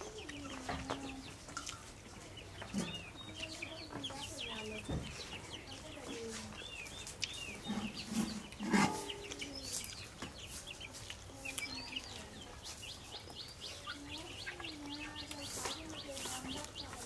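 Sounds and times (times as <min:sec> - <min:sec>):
birds chirping: 0:00.0 - 0:17.0
chicken clucking: 0:00.0 - 0:17.0.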